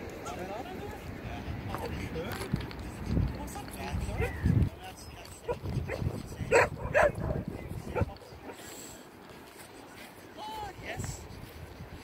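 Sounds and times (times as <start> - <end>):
animal barking: 5.4 - 8.6.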